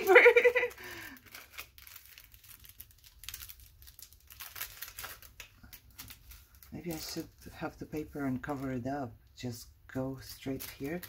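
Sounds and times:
paper rustling and crinkling: 0:00.0 - 0:08.8, 0:10.3 - 0:11.0.

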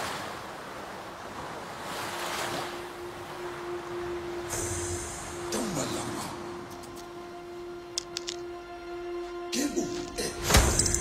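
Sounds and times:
waves washing onto shore: 0:00.0 - 0:06.7.

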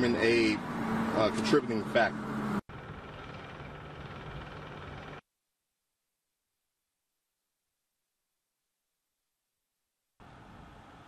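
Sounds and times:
outdoor background noise: 0:00.0 - 0:05.2, 0:10.2 - 0:11.0.

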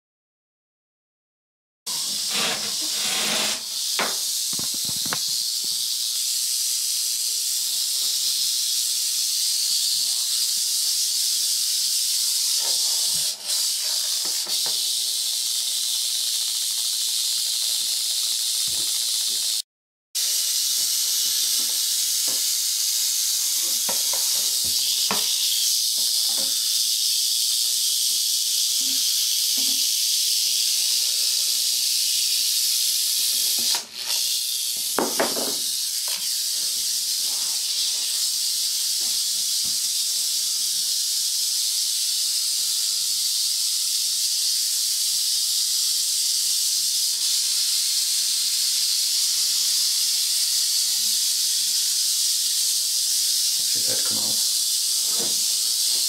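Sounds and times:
rattlesnake rattling: 0:01.9 - 0:19.6, 0:20.2 - 0:56.0.

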